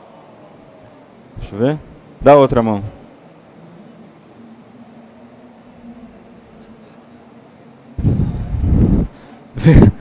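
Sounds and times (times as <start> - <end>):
microphone handling rumble: 8.0 - 9.1.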